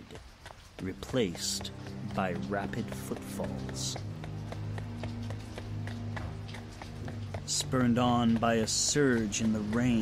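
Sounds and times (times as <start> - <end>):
rapid running footsteps: 0.0 - 10.0
low music drone: 1.0 - 10.0.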